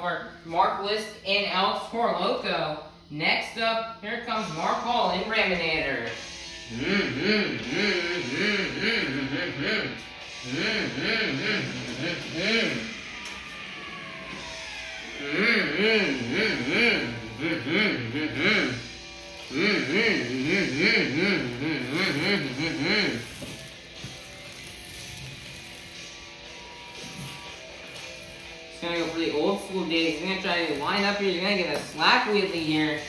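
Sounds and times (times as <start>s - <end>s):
boy humming and vocalising: 6.6s - 13.6s, 14.4s - 25.9s
boy laughing: 7.6s - 12.9s, 15.3s - 18.9s, 19.5s - 23.5s.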